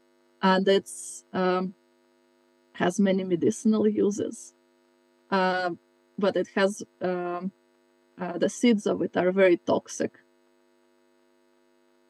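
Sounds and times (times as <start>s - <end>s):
faint electrical mains hum: 0.0s - 12.0s
person speaking: 0.4s - 1.7s, 2.8s - 4.5s, 5.3s - 7.5s, 8.2s - 10.1s.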